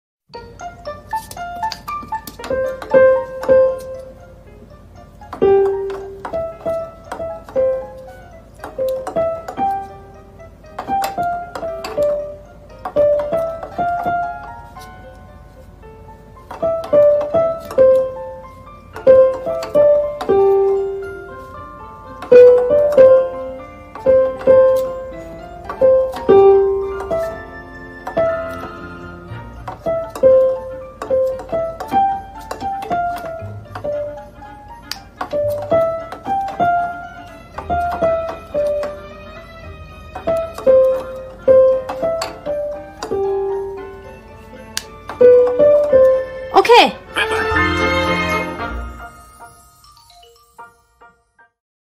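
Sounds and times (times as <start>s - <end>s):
electronic keyboard notes: 0.3s - 51.6s
beak knocking on keys: 1.1s - 4.1s, 5.2s - 10.0s, 10.7s - 14.6s, 16.4s - 18.2s, 18.9s - 20.9s, 22.1s - 27.4s, 29.6s - 34.2s, 34.8s - 39.1s, 40.1s - 43.7s.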